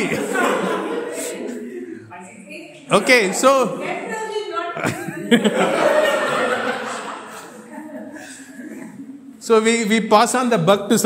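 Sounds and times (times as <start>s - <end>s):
people laughing: 0.0s - 2.1s, 3.1s - 9.4s.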